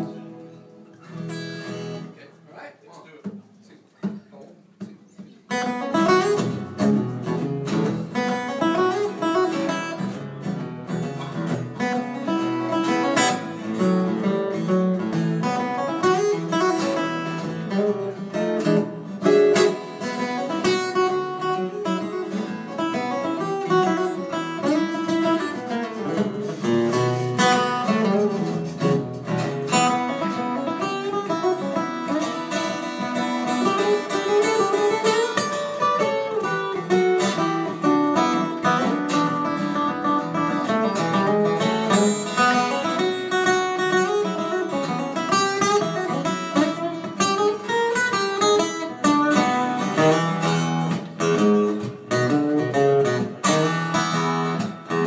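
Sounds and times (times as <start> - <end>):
acoustic guitar duet: 0.0 - 55.0.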